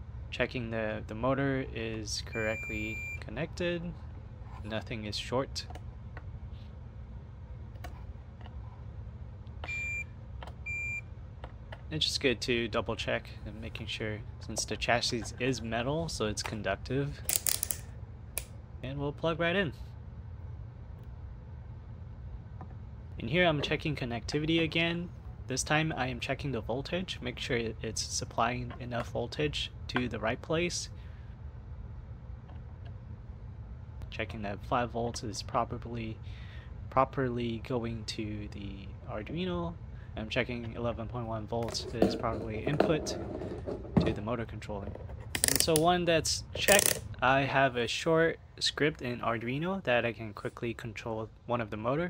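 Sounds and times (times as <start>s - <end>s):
low steady background hum: 0.0s - 52.0s
multimeter beeping: 2.2s - 3.2s, 9.6s - 11.1s.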